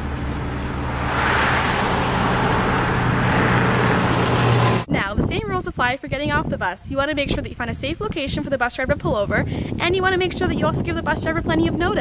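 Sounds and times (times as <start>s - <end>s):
bus engine humming: 0.0s - 4.9s.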